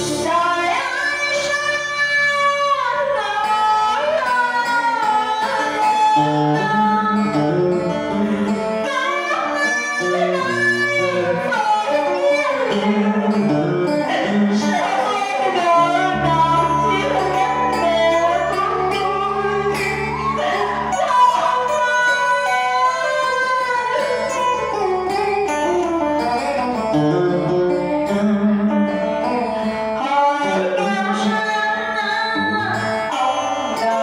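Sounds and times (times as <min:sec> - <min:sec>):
plucked string instruments: 0:00.0 - 0:34.0
woman singing opera melody: 0:08.8 - 0:24.9, 0:30.0 - 0:34.0.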